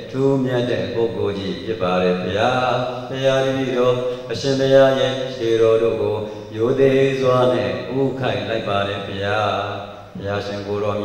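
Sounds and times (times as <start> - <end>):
person chanting melodically: 0.0 - 11.0.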